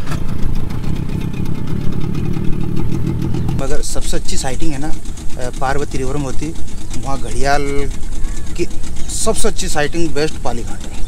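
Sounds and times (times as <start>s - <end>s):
outboard motor running: 0.0s - 11.0s
man talking: 3.5s - 7.9s, 8.6s - 11.0s.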